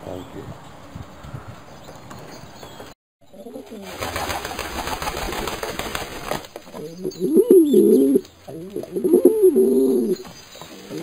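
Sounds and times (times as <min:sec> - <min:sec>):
pigeon cooing: 0:06.7 - 0:11.0.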